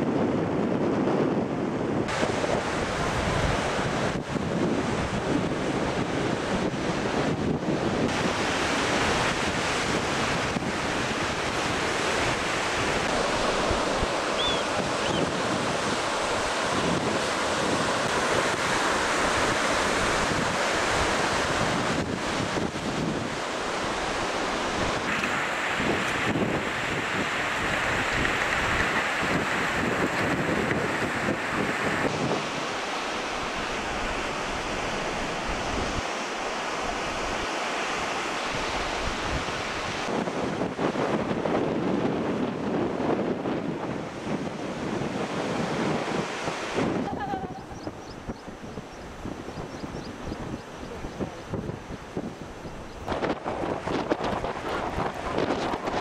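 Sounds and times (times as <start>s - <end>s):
wind buffeting microphone: 0.0s - 56.0s
surf washing onto rocky shore: 1.7s - 49.5s, 51.4s - 56.0s.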